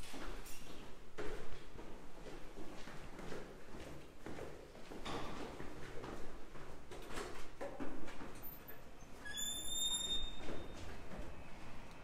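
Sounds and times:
footsteps: 0.0s - 9.0s
high steady squeak: 9.3s - 10.4s.

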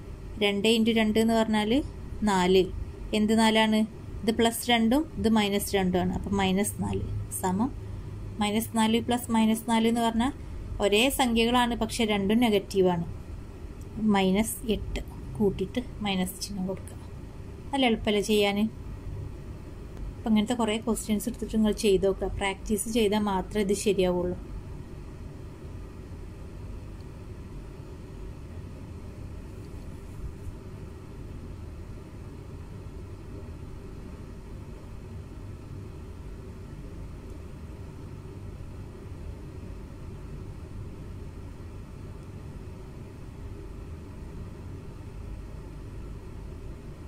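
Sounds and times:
low background rumble: 0.0s - 47.0s.

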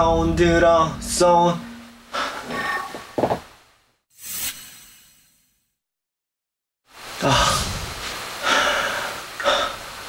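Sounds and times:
man sighing heavily: 7.2s - 7.8s.

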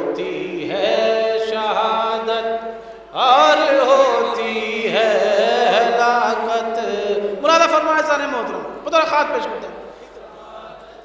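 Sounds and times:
man chanting a mourning poem: 3.5s - 9.8s.

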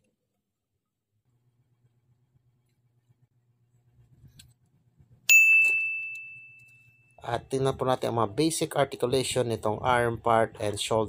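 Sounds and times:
bright bell-like ding: 5.3s - 7.2s.

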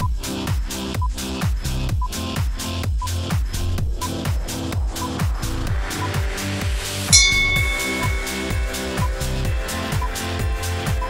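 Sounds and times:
electronic dance music: 2.1s - 11.0s
bell-like chime: 7.1s - 9.8s.

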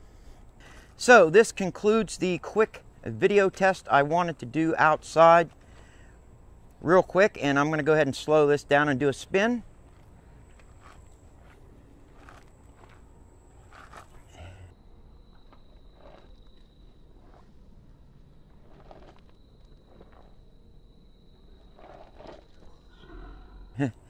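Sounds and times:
faint high whine: 0.0s - 24.0s.

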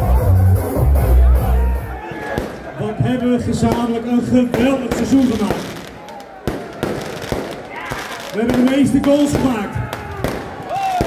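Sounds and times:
open-air hubbub: 0.0s - 11.0s
sharp bangs with echo: 3.6s - 11.0s.

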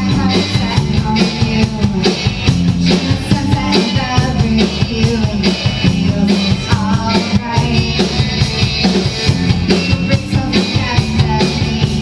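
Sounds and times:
woman singing: 0.0s - 8.5s, 9.6s - 12.0s
drum kit beat: 0.0s - 12.0s
electric guitars: 0.0s - 12.0s.

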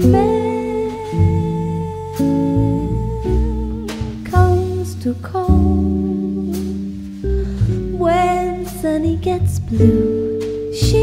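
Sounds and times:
double bass: 0.0s - 11.0s
drums: 0.0s - 11.0s
electric jazz guitar chords: 0.0s - 11.0s
woman singing: 0.0s - 11.0s.

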